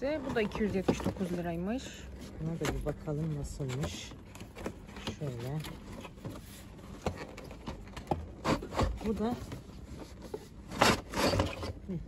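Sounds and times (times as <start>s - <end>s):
cardboard and plastic rustling: 0.0s - 12.0s.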